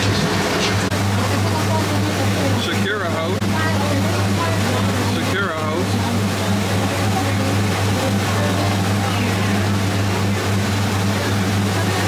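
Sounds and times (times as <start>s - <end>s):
boat engine droning: 0.0s - 12.0s
voice: 0.9s - 12.0s.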